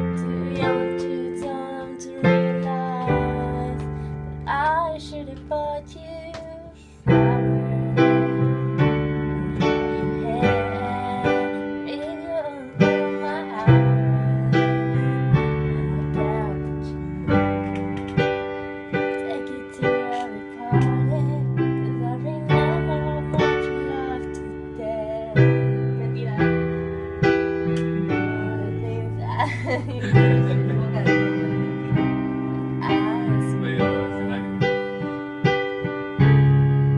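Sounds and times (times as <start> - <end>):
digital piano chords: 0.0 - 36.9.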